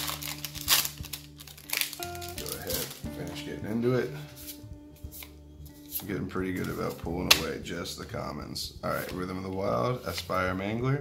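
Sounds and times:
foil wrapper crinkling: 0.0 - 3.1.

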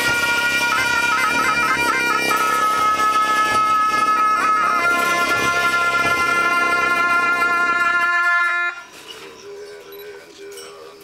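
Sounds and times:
low drone: 0.0 - 8.9
wind instruments holding a note: 0.0 - 9.0.

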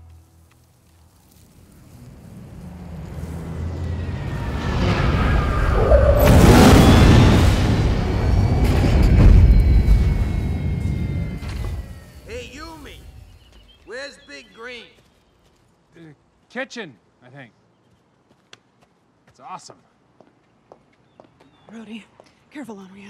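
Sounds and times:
spaceship rumble and roar: 1.5 - 13.5.

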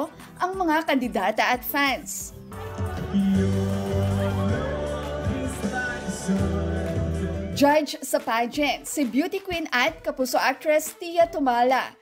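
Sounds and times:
backing music: 0.2 - 10.1
man singing into microphone: 3.0 - 7.6.

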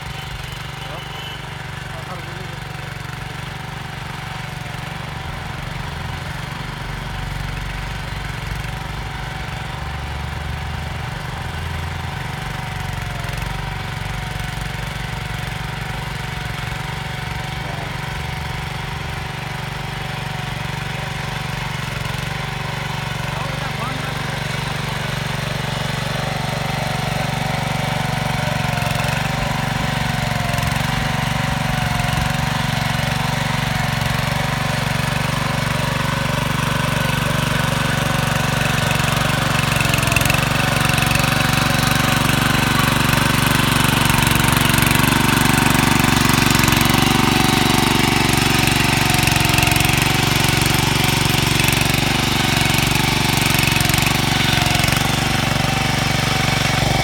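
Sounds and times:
power tiller engine running: 0.0 - 57.0.

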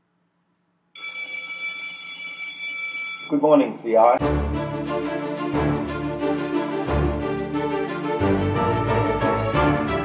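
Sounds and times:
electric school bell ringing: 1.0 - 3.5.

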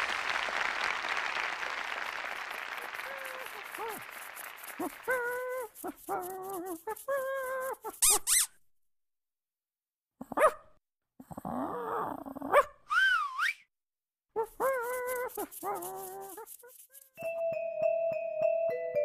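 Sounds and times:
dog yelps and whines: 4.7 - 8.5, 10.3 - 10.6, 11.4 - 13.6, 14.4 - 16.8
high squeaks: 5.1 - 8.6.

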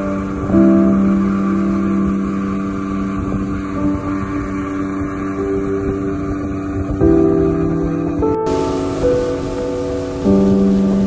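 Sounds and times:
outboard motor running: 0.0 - 7.4
water rushing past hull: 0.0 - 11.0.

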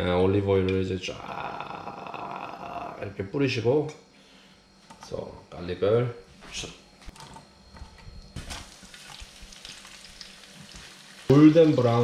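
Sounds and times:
garlic sizzling in hot oil: 8.4 - 12.0.

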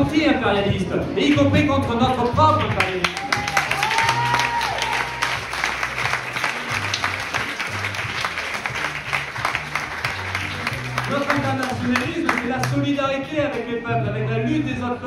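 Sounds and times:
background music with bass: 0.0 - 15.0
audience clapping: 2.2 - 13.6.

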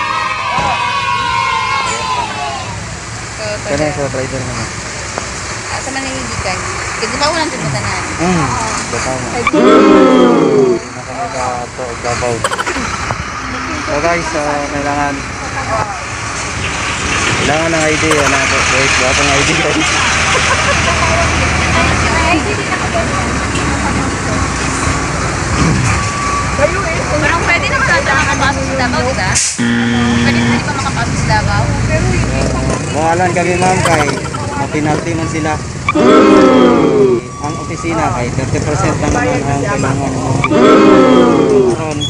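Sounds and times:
indistinct talking: 12.4 - 13.8, 18.1 - 19.0.

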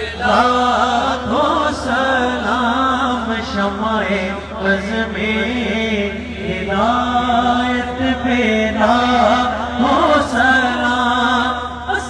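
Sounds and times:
man chanting a recitation: 0.0 - 12.0.

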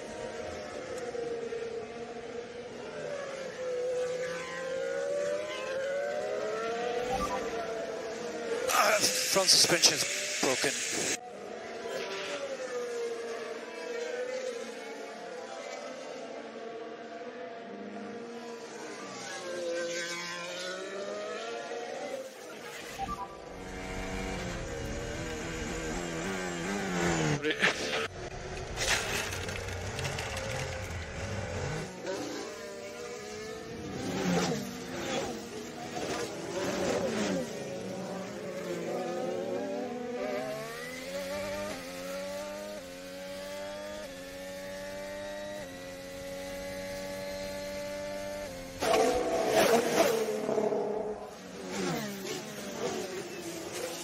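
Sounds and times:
race car engines passing by: 0.0 - 54.0
engine revving through upshifts: 2.4 - 11.2, 18.2 - 28.1, 28.7 - 54.0.

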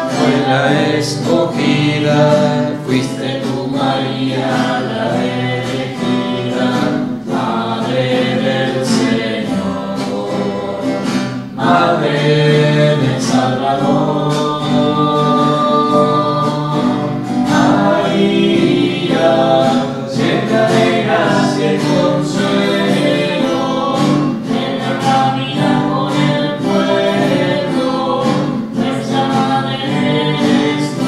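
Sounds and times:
voices singing a hymn: 0.0 - 31.0.

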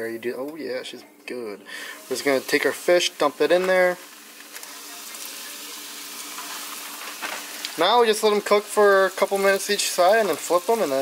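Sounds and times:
fish frying in hot oil: 2.0 - 11.0.

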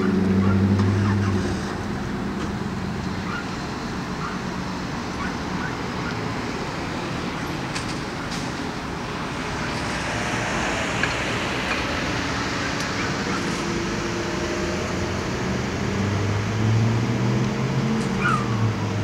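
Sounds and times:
outdoor traffic noise: 0.0 - 19.0
vehicle engine running low: 0.0 - 19.0.

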